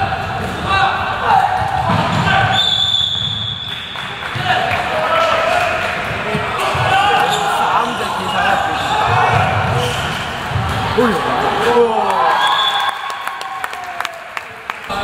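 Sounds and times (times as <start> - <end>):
players calling: 0.0 - 12.9
referee's whistle: 2.4 - 4.3.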